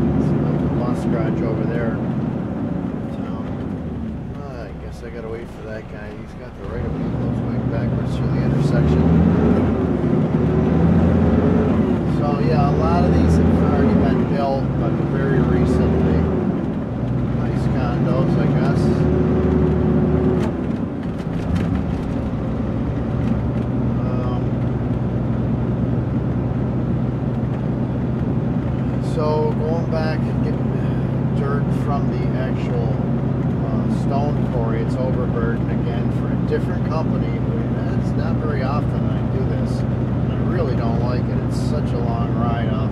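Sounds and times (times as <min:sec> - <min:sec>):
truck diesel engine changing gears: 0:00.0 - 0:42.9.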